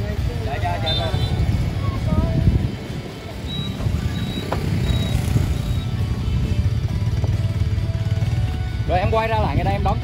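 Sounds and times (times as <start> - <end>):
car and motorbike engines running: 0.0 - 10.0
background music: 5.3 - 10.0.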